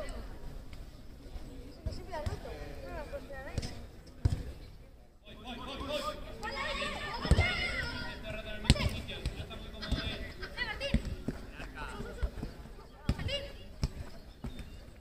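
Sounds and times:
people shouting and calling: 0:06.2 - 0:09.0.

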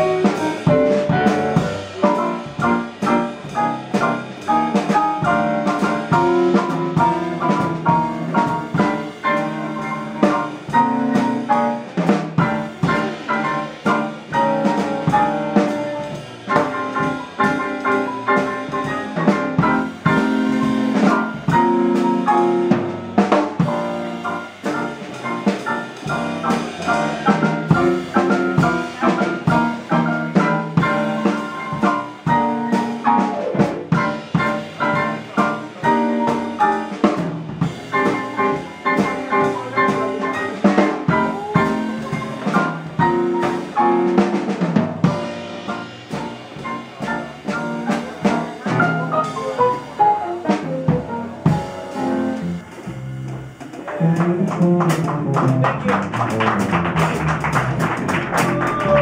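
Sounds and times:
double bass: 0:00.0 - 0:59.0
drum kit: 0:00.0 - 0:59.0
grand piano: 0:00.0 - 0:59.0.

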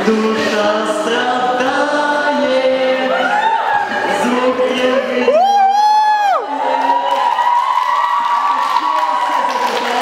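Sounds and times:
man singing a long high note: 0:00.0 - 0:06.7
audience cheering and whooping: 0:03.1 - 0:04.1, 0:05.2 - 0:10.0.

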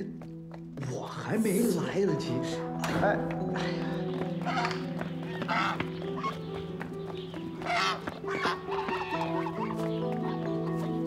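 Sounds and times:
music score of held notes: 0:01.3 - 0:11.0
geese honking: 0:04.3 - 0:11.0.

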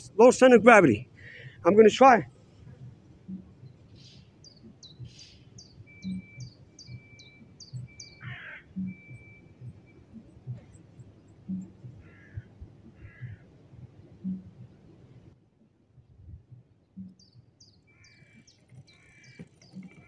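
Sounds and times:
bird chirping: 0:03.2 - 0:12.4, 0:16.8 - 0:20.0
harsh bird calls: 0:03.3 - 0:10.1, 0:10.7 - 0:13.5, 0:17.2 - 0:20.0.

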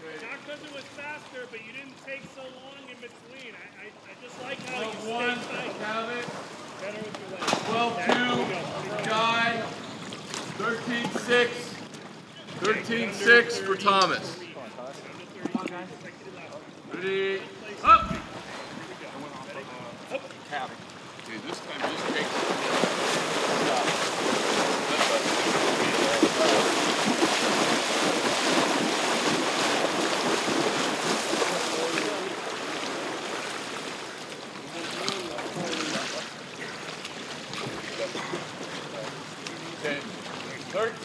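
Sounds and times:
swimmers splashing: 0:00.0 - 0:15.3, 0:16.4 - 0:41.0
person shouting: 0:17.8 - 0:18.3.

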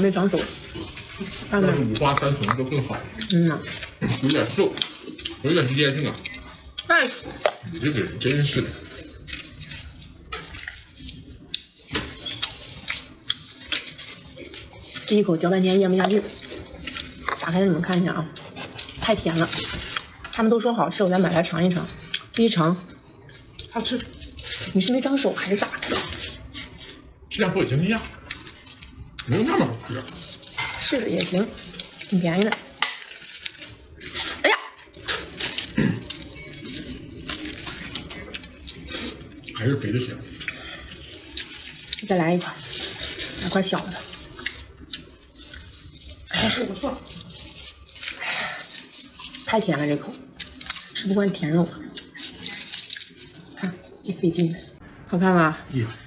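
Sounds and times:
leaf wrapping crackling: 0:00.0 - 0:54.8
plastic gloves rustling: 0:00.0 - 0:54.8
wet squishing: 0:00.0 - 0:55.0.

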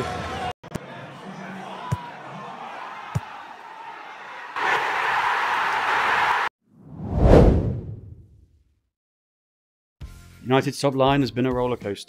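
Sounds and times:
whoosh: 0:06.8 - 0:08.4.

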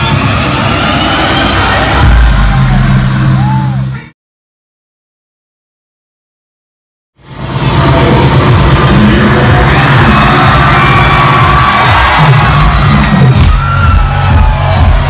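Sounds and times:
loud electronic dance music: 0:00.0 - 0:04.1, 0:07.2 - 0:15.0.

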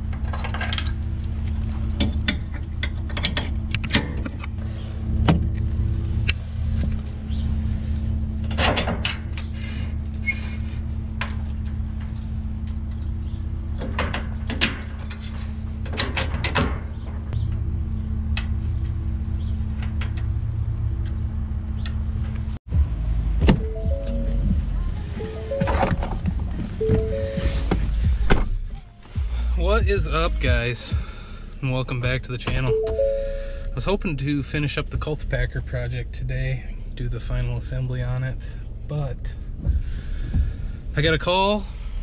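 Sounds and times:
low engine hum: 0:00.0 - 0:42.0.

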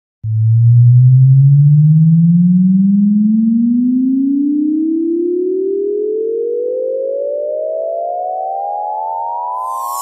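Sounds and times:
rising sine-wave tone sweep: 0:00.3 - 0:10.0.

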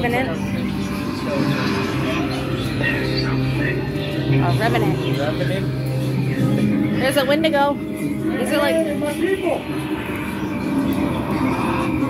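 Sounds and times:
low rumbling horror drone: 0:00.0 - 0:12.0.

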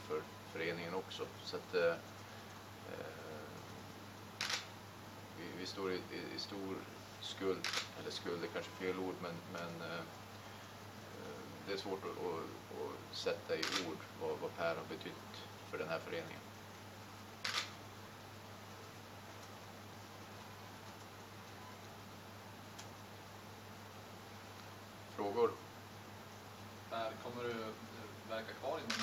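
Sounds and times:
low room hum: 0:00.0 - 0:29.0
camera shutter click: 0:04.4 - 0:04.7, 0:07.6 - 0:08.0, 0:13.6 - 0:13.9, 0:17.4 - 0:17.8.

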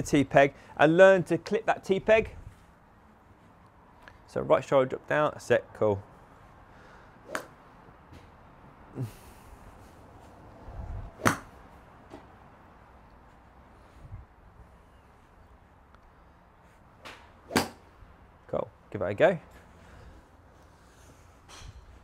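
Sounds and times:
golf club swing whoosh: 0:07.2 - 0:07.6, 0:09.8 - 0:11.6, 0:17.1 - 0:17.9.

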